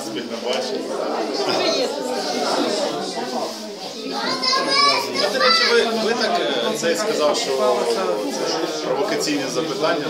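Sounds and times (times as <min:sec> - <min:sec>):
babble of overlapping conversation: 0:00.0 - 0:10.0.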